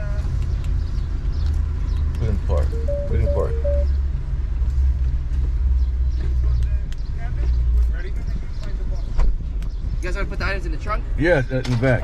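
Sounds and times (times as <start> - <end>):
car idling: 2.2 - 4.9.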